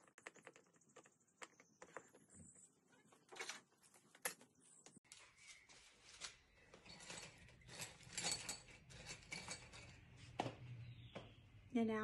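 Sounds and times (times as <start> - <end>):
small objects clicking and tapping: 0.0 - 2.4.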